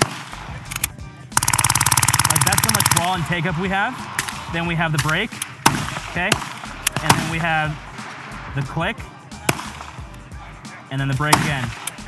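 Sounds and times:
loud sharp snap: 4.2s - 7.3s, 9.5s - 10.1s, 11.3s - 12.0s.

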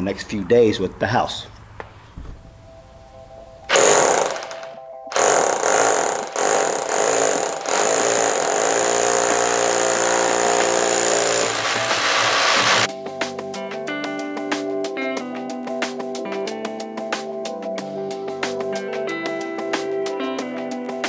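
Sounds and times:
hammer drill boring: 3.7s - 12.9s.

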